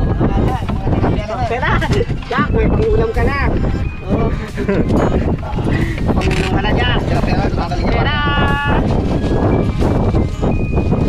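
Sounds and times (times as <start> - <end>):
water around boat: 0.0 - 11.0
wind rumble on microphone: 0.0 - 11.0.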